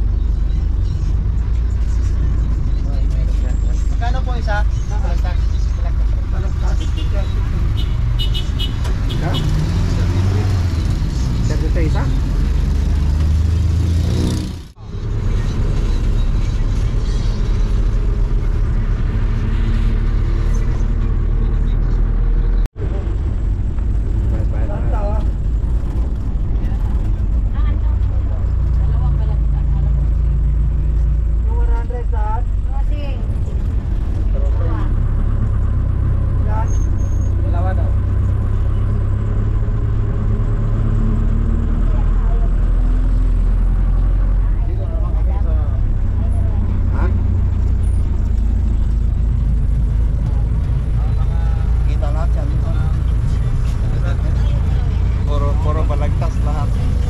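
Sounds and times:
diesel engine rumble: 0.0s - 57.0s
road noise: 0.0s - 57.0s.

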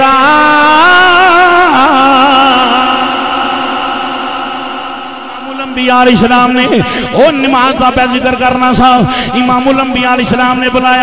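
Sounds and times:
man singing long note: 0.0s - 7.9s.

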